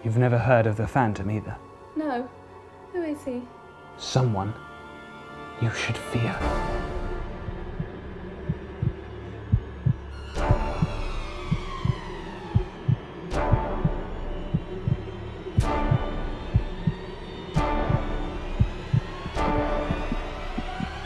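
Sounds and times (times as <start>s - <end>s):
low heartbeat-like pulse: 7.3s - 21.0s.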